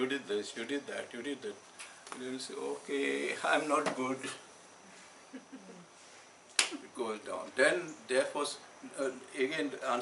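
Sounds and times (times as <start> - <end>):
man talking: 0.0 - 4.4, 6.8 - 10.0.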